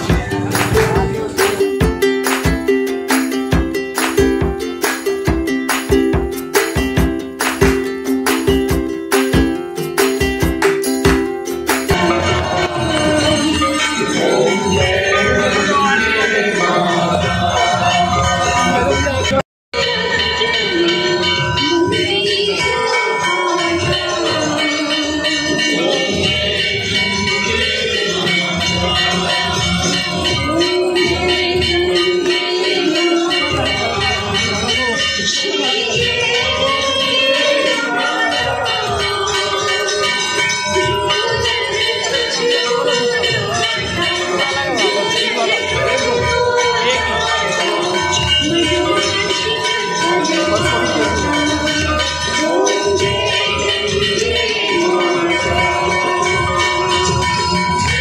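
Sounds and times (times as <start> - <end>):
devotional music: 0.0 - 58.0
ringing bells: 0.0 - 58.0.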